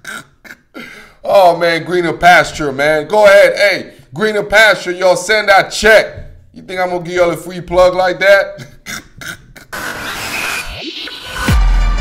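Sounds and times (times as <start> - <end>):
man laughing: 0.0 - 1.0, 8.4 - 9.8.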